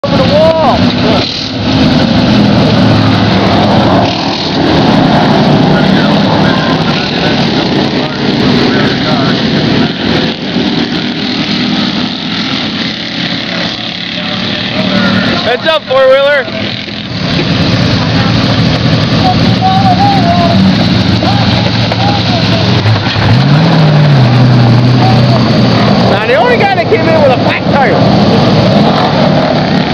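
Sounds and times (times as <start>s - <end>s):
race car engine running loud: 0.0s - 29.9s
voices: 2.6s - 29.9s.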